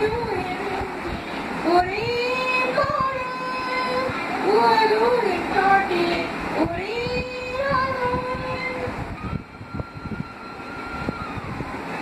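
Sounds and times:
elderly woman singing unaccompanied: 0.0 - 9.0.

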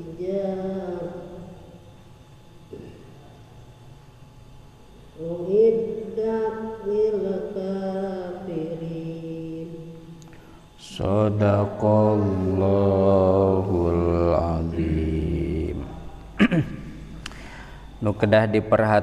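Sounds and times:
man chanting melodically: 10.8 - 16.2, 18.0 - 19.0.

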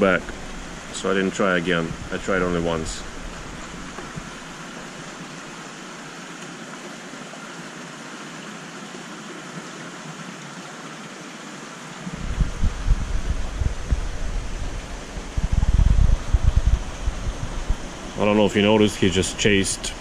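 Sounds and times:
machinery and water hiss: 0.0 - 20.0
low rumbling thumps: 1.7 - 5.2, 12.1 - 18.8.

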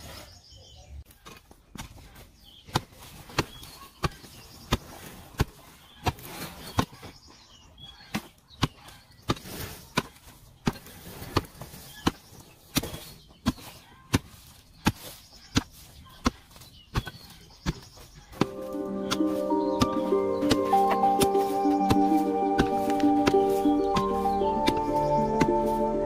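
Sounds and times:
soft music: 18.4 - 26.0.

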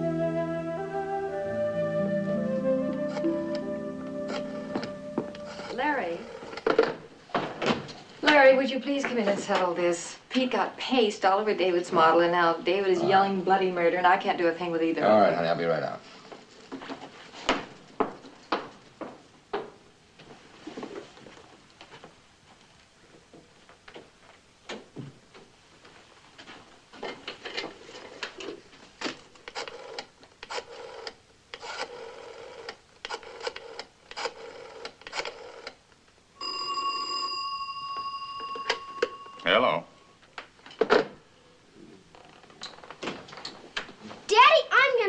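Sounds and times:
telephone ringing: 36.4 - 40.1.

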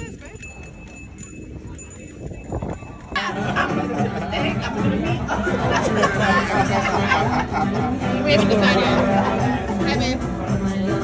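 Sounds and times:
people talking and chattering: 0.0 - 11.0.

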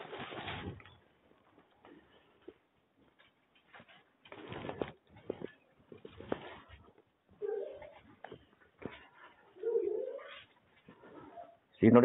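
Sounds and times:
pigeon cooing: 9.6 - 11.6.

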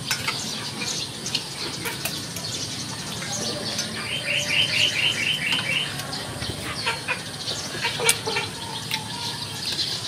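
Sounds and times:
bird chirping rapidly: 2.4 - 6.0.

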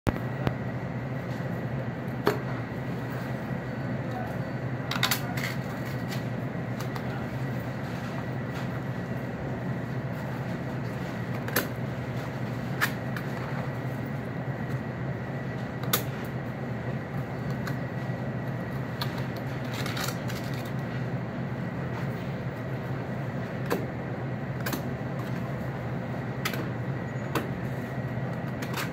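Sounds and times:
steady low hum: 0.1 - 28.9.

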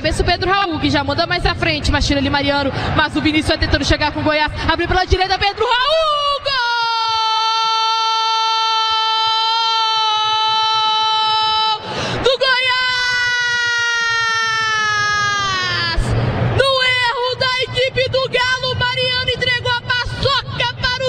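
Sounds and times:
gasp for breath: 2.7 - 3.0, 11.8 - 12.2.

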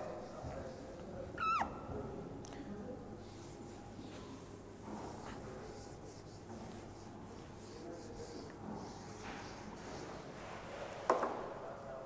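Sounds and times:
duster squeaking on whiteboard: 1.4 - 1.8.

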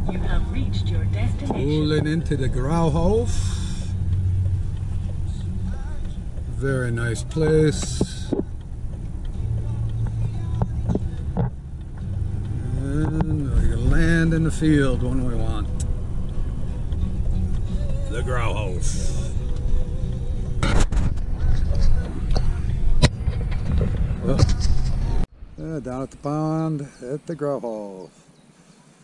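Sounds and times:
car engine and tyres rumbling: 0.0 - 29.0.

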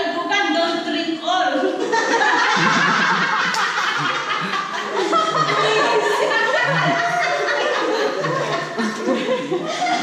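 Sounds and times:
people laughing and chattering: 1.5 - 10.0.

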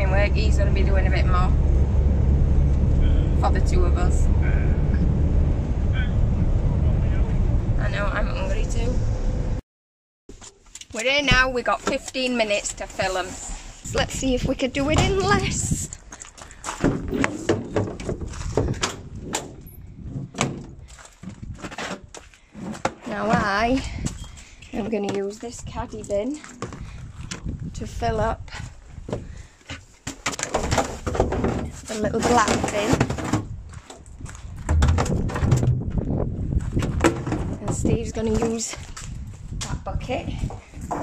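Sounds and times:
wind buffeting microphone: 0.0 - 9.6, 12.7 - 21.8, 23.3 - 29.5, 33.2 - 41.0
irregular knocks and thuds: 14.8 - 24.2, 26.6 - 27.6, 29.0 - 39.8, 40.4 - 41.0.

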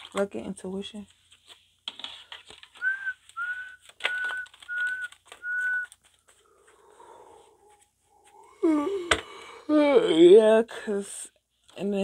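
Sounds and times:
deck of cards clicking: 1.9 - 6.4
short whistled notes: 2.8 - 6.0.

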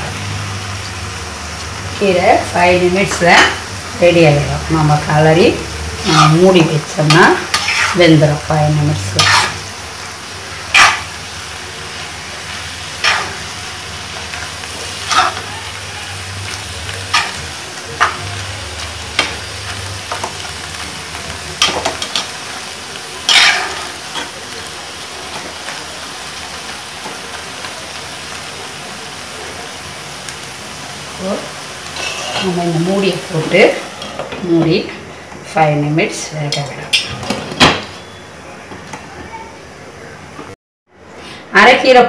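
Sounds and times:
greens sizzling in a pan: 0.0 - 36.9
steel spatula scraping a pan: 7.0 - 8.2, 9.0 - 9.7, 10.7 - 11.2, 12.9 - 13.6, 14.2 - 15.8, 17.1 - 18.2, 23.3 - 24.3, 31.9 - 34.4.

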